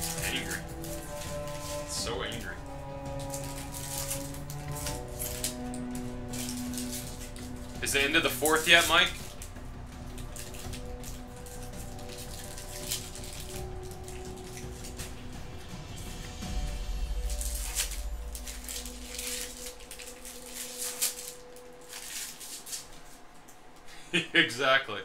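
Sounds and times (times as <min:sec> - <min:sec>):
cards being handled: 0:00.0 - 0:23.5
foil wrapper crinkling: 0:00.0 - 0:23.9
faint background music: 0:00.0 - 0:25.0.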